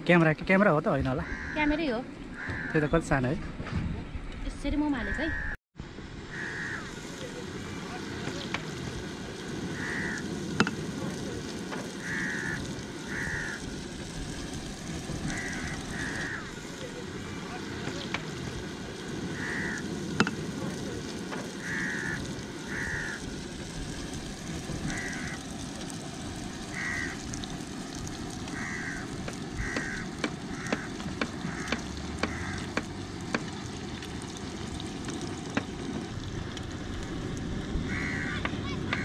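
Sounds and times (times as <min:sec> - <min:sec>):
dough frying in hot oil: 0:06.4 - 0:39.0.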